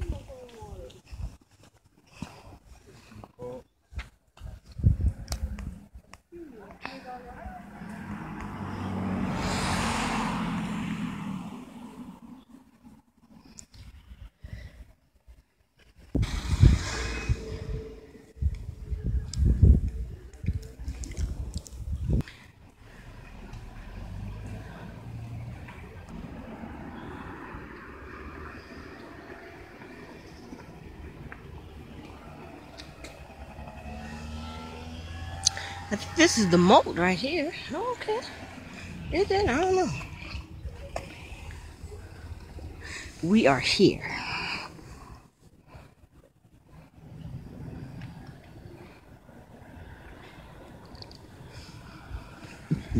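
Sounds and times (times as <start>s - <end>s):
vehicle engine rumbling: 0.0s - 52.9s
car passing by: 6.8s - 13.1s, 16.2s - 18.6s, 22.2s - 45.9s, 46.7s - 52.9s.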